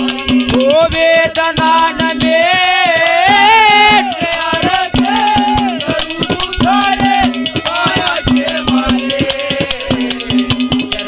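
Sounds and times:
fast hand-drum beats: 0.0s - 11.0s
harmonium melody: 0.0s - 11.0s.

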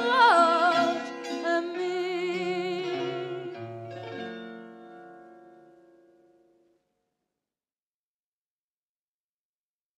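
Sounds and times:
person singing: 0.0s - 3.9s.

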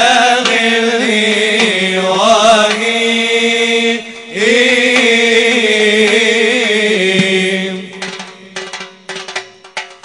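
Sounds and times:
hand percussion hits: 0.0s - 1.8s, 2.6s - 3.0s, 4.1s - 10.0s
chanting voices: 0.0s - 9.4s.

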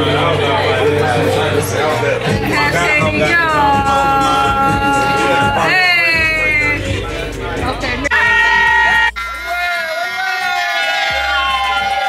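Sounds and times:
loud music with steady bass: 0.0s - 12.0s
group shouting and singing: 0.1s - 12.0s.

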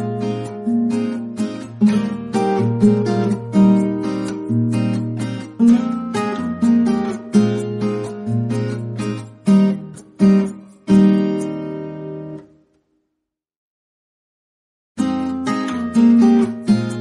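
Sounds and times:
strummed acoustic guitar chords: 0.0s - 12.6s, 15.0s - 17.0s.

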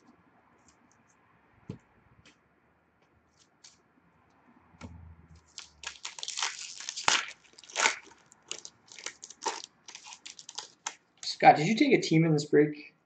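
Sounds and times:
wrapper crinkling and tearing: 5.4s - 11.3s.

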